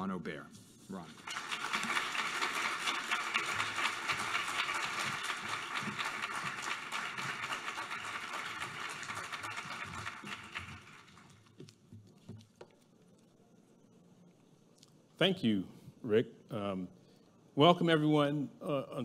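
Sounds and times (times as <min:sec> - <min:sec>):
audience applauding: 0:01.1 - 0:11.6.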